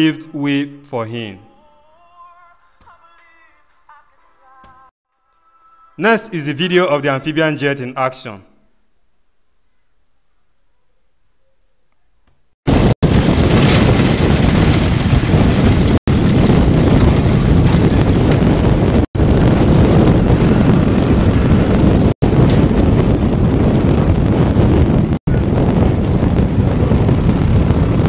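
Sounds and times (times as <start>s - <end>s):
wind buffeting microphone: 12.6s - 28.0s.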